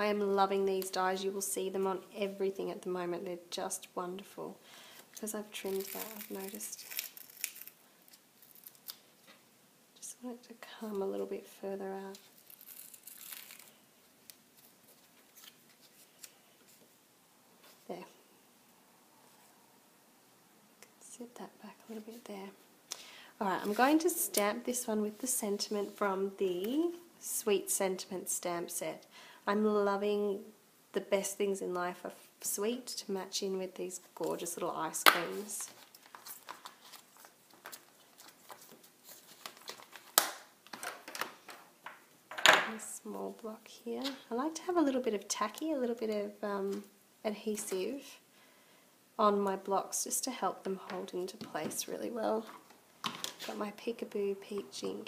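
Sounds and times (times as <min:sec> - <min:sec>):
rustling paper and ribbon: 0:05.1 - 0:09.3, 0:12.0 - 0:13.8, 0:35.2 - 0:41.6.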